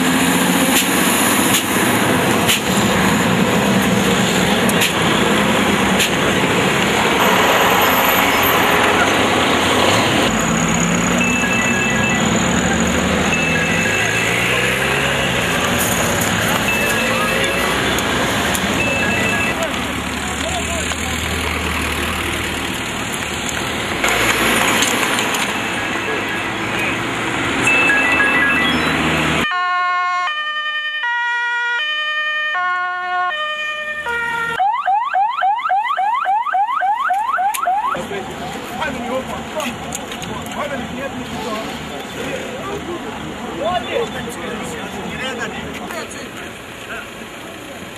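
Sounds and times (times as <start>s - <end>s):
traffic: 0.0s - 47.9s
voices: 4.4s - 23.6s, 25.1s - 29.0s, 37.5s - 47.9s
electronic siren: 11.2s - 14.5s, 27.7s - 38.0s.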